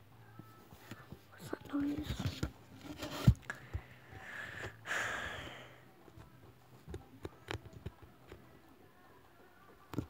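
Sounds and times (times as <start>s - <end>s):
girl whispering: 0.9s - 2.3s.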